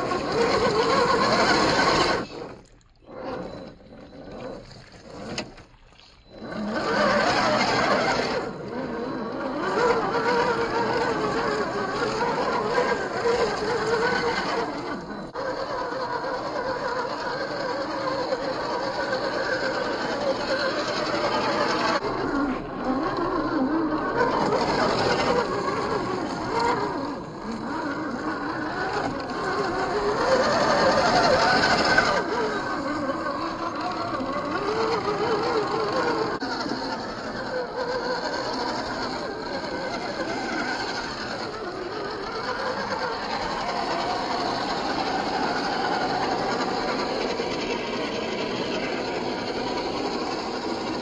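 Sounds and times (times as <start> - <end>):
electric motor whining: 0.0 - 51.0.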